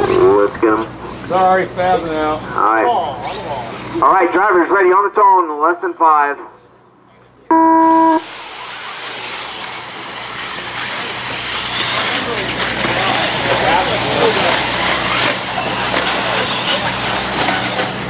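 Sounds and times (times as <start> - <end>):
electric rc cars racing: 0.0 - 4.0, 8.0 - 18.0
steady start tone: 7.5 - 8.2
motor whines: 7.5 - 18.0.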